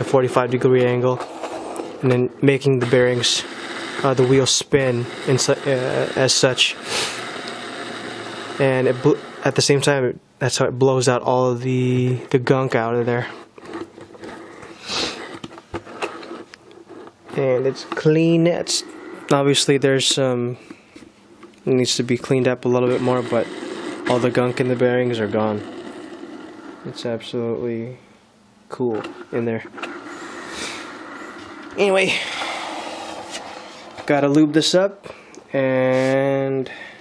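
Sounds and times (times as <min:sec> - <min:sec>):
skateboard wheel whirring: 0:00.0 - 0:09.9, 0:11.7 - 0:27.3, 0:28.9 - 0:35.2
short sharp sniff: 0:06.8 - 0:07.3, 0:14.7 - 0:15.3, 0:30.1 - 0:31.0, 0:35.9 - 0:36.2.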